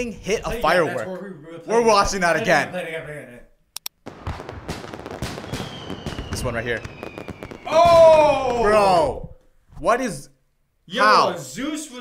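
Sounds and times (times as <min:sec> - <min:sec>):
fireworks crackling pops: 0:03.8 - 0:09.3
high falling whistle: 0:05.3 - 0:09.0.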